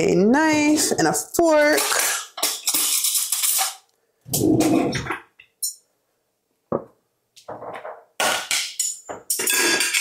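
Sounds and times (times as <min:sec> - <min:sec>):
metal cutlery clattering in drawer: 0:01.5 - 0:03.8, 0:08.2 - 0:10.0.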